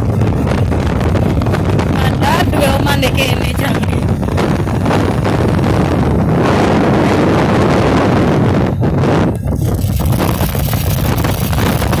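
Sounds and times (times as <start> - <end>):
low road and engine rumble: 0.0 - 12.0
wind rushing over microphone: 0.0 - 12.0.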